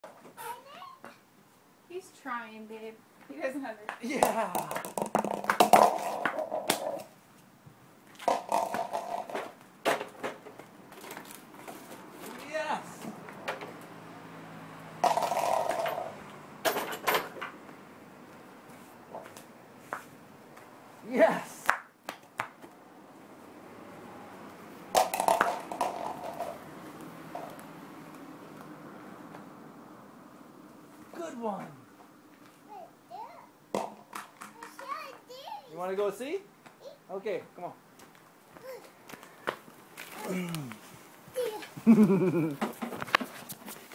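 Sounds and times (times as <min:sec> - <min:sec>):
frisbee clacking on asphalt: 0:03.8 - 0:12.4, 0:15.0 - 0:16.4, 0:24.9 - 0:29.4, 0:33.7 - 0:35.3, 0:37.9 - 0:43.9
person calling out: 0:40.2 - 0:40.8.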